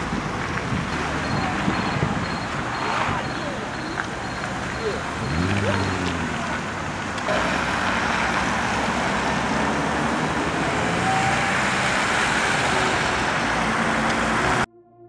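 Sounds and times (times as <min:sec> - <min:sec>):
cars driving past on wet street: 0:00.0 - 0:14.7.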